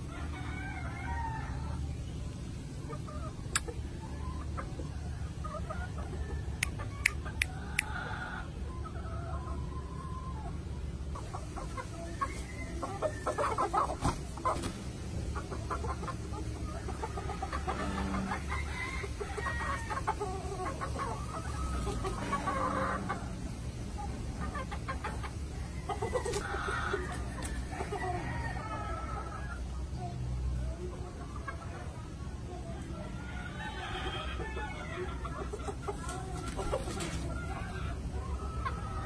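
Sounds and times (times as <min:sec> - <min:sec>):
chickens clucking: 0:00.0 - 0:39.0.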